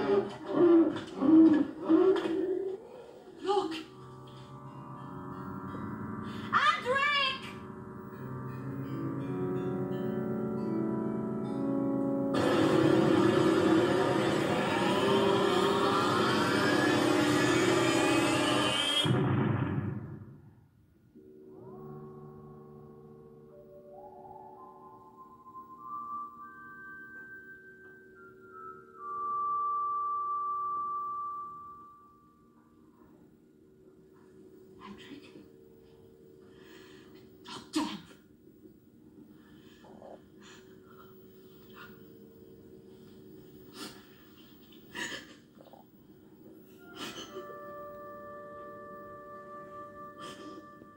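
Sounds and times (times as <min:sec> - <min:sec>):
loud roar with rising whine: 0:12.4 - 0:19.1.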